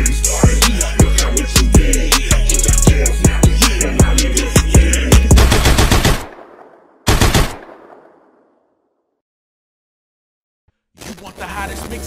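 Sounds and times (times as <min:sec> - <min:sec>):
hip-hop beat: 0:00.0 - 0:05.6
automatic gunfire bursts: 0:05.4 - 0:06.5, 0:07.1 - 0:07.8.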